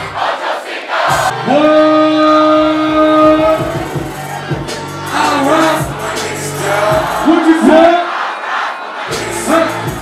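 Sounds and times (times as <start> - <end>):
loud hip-hop music: 1.0 - 10.0.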